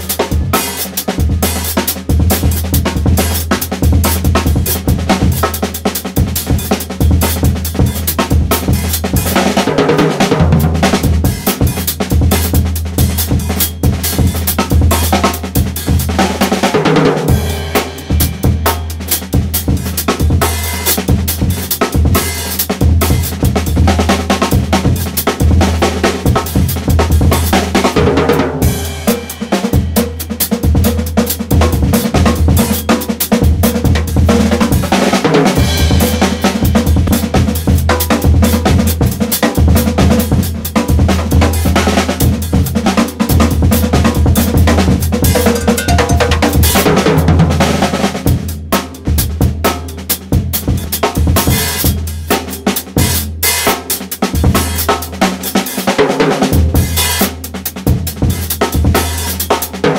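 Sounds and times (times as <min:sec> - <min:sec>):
drum kit playing breakbeat: 0:00.0 - 0:59.9.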